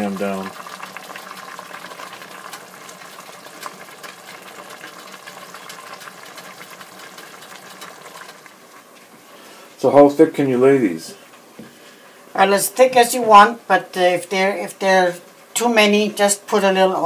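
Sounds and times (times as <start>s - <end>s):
water boiling with bubbling: 0.0s - 17.0s.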